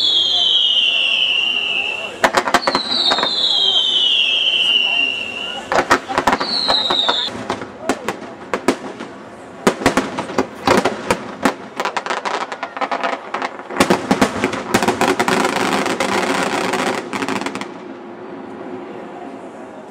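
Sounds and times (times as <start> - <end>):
firework whistle falling: 0.0 - 7.4
firework crackling: 0.0 - 19.7.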